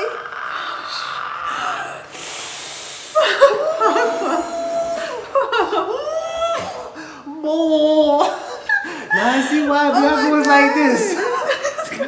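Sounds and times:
people gasping and crying out: 0.0 - 11.5
hissing intake of breath: 0.6 - 5.2
long wavering wails: 3.5 - 6.7.

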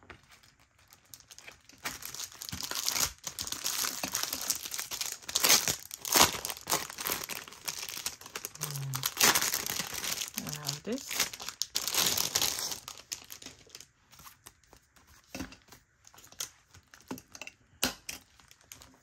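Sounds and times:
plastic wrapping crinkling: 0.0 - 17.4, 18.2 - 19.0
short voice: 8.6 - 9.0.

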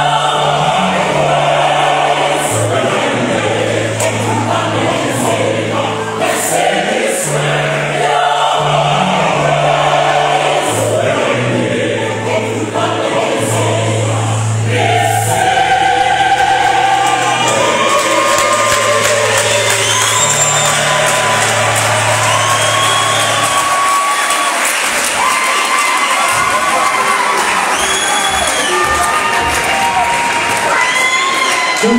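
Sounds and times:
choir singing sustained chords: 0.0 - 24.9
audience cheering with shrill calls: 14.6 - 31.9.

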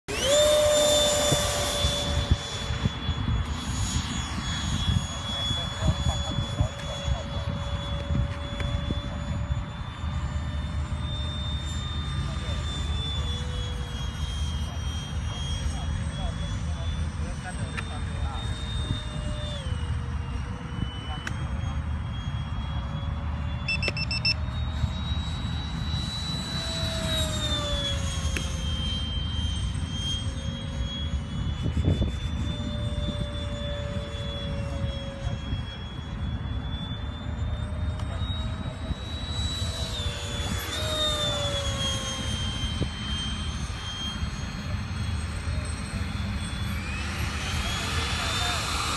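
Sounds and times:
jet ducted fans whining: 0.1 - 48.9.

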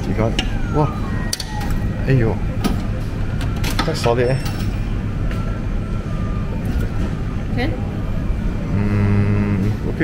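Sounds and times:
arcade machines rumble: 0.0 - 10.0.

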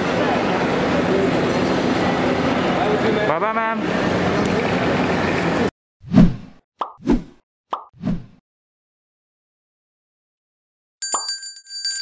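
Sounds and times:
busy background noise: 0.0 - 5.7.

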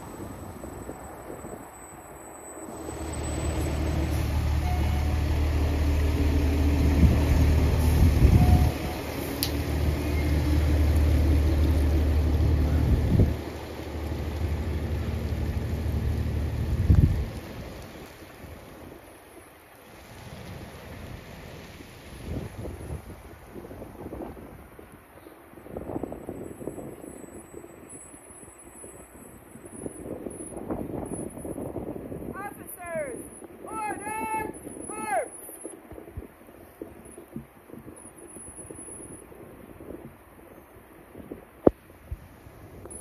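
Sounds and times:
diesel engine passing: 0.0 - 18.8
tyres hissing on a wet road: 0.0 - 32.3.

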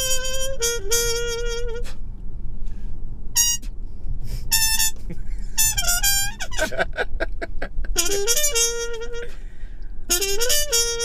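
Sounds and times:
trumpet playing short high notes: 0.0 - 2.0, 3.4 - 3.7, 4.5 - 5.0, 5.6 - 6.8, 8.0 - 9.4, 10.1 - 11.0
low rumble of car cabin: 0.0 - 11.0.

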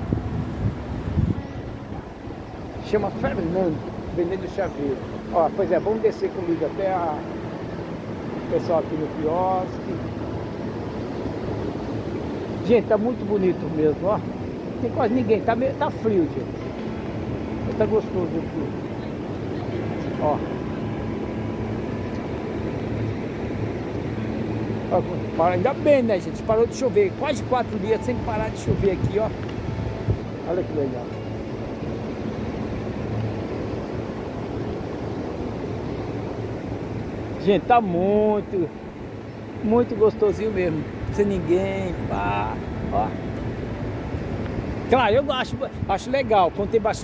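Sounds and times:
wind buffeting microphone: 0.0 - 5.3, 9.3 - 37.5.

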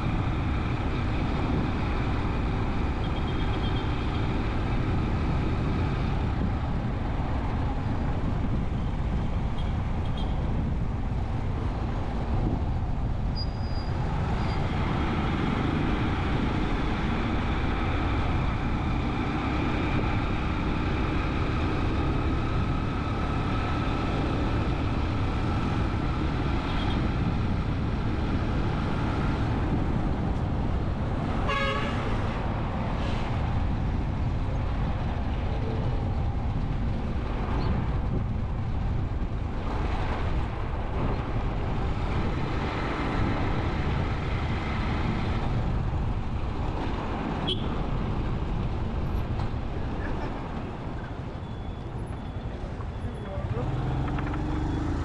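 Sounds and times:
vehicle rumble on road: 0.0 - 55.0.

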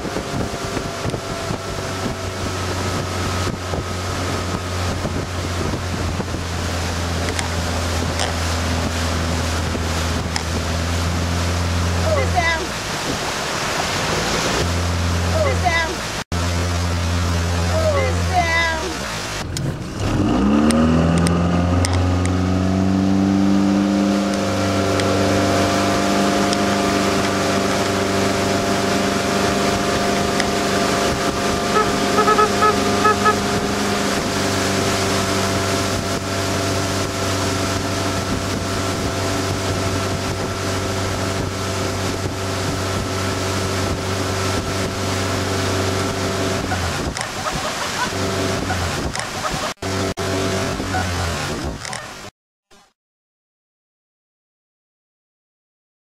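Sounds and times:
motorboat engine: 0.0 - 52.3
water rushing along hull: 0.0 - 52.3.

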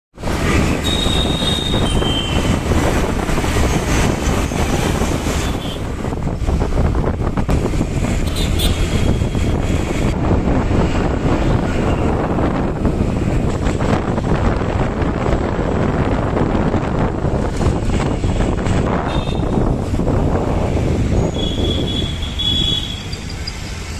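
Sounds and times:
traffic rumble of engines and road: 0.1 - 23.9
wind buffeting microphone: 0.2 - 23.9.

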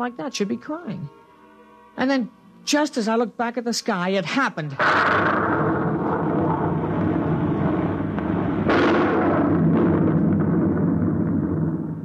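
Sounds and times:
rocket rushing rumble: 4.8 - 12.0.

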